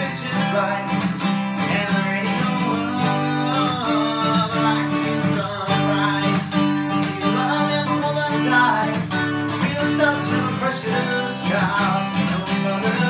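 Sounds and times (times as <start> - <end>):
acoustic guitar strumming: 0.0 - 13.0.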